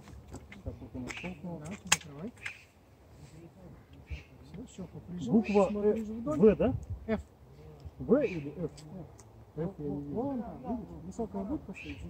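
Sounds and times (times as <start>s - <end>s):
men talking: 0.6s - 12.0s.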